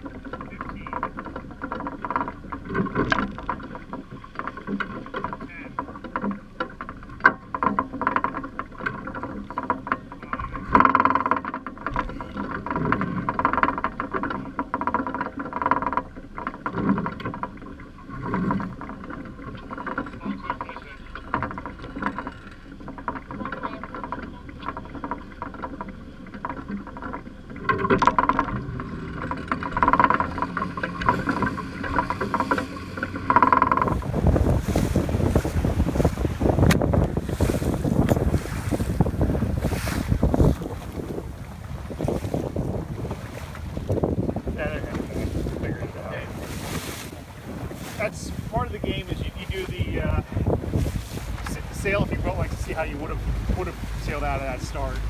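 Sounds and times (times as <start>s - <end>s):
motorboat engine running: 0.0s - 55.0s
water washing past hull: 0.0s - 55.0s
wind buffeting microphone: 27.9s - 55.0s.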